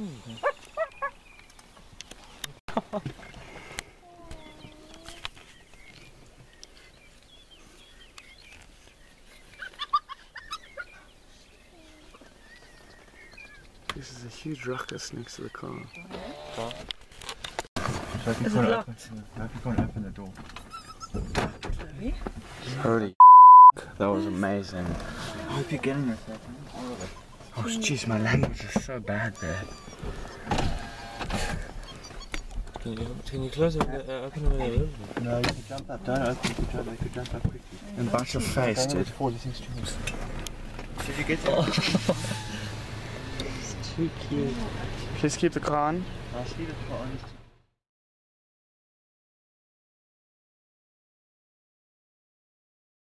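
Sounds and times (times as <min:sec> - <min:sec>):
hyenas squeaky clucking calls: 0:00.3 - 0:01.2, 0:09.5 - 0:11.1, 0:20.5 - 0:21.6, 0:26.7 - 0:28.0, 0:29.1 - 0:32.6, 0:42.0 - 0:42.8
electric window motor whining: 0:30.4 - 0:31.4
hyena whining call: 0:42.2 - 0:42.8.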